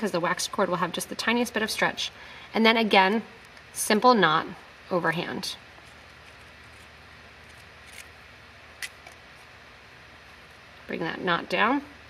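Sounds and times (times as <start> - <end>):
cord rubbing hiss: 5.7 - 8.2.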